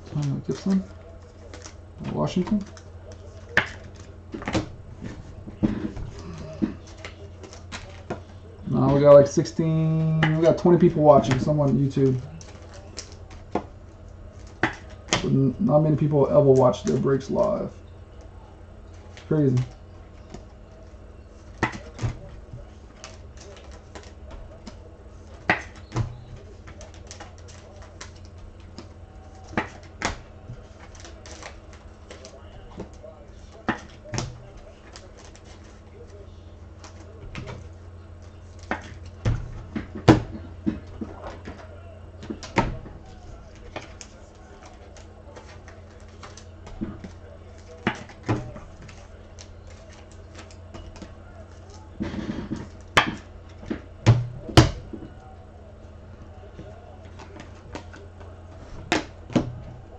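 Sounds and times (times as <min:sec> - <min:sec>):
low electrical hum: 0:00.0 - 0:59.9.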